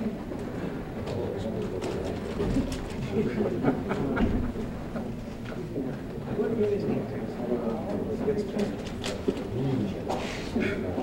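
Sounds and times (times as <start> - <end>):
murmur of people talking: 0.0 - 11.0.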